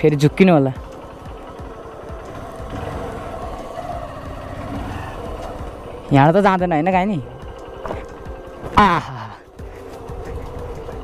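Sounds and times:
motorcycle engine running: 0.0s - 9.0s.

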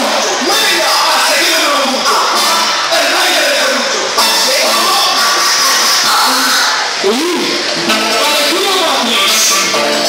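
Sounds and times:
crowd shouting and cheering: 0.0s - 10.0s
loud dance music: 0.0s - 10.0s.

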